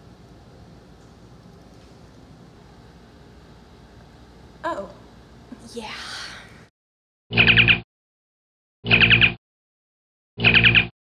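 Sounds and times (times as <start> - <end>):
steady low hum: 0.0 - 6.7.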